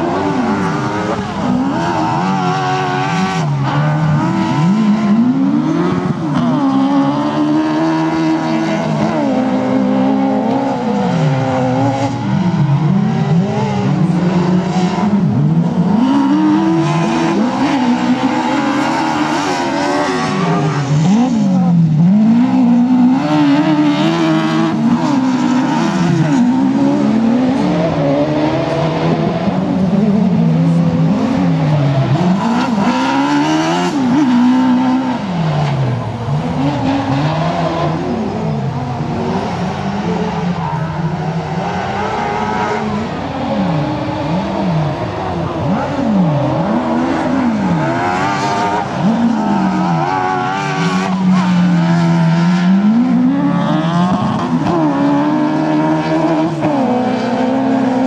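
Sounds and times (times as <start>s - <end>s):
racing buggy engine revving: 0.0s - 58.0s.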